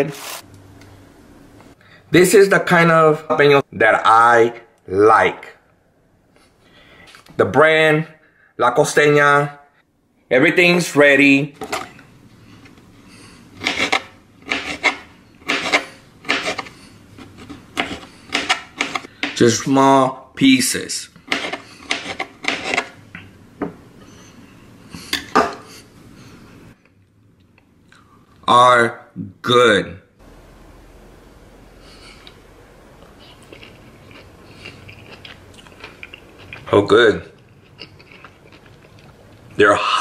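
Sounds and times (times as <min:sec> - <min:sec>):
knife cutting on plastic board: 0:13.6 - 0:19.1, 0:21.3 - 0:23.0
person chewing: 0:33.0 - 0:36.7, 0:37.3 - 0:39.6.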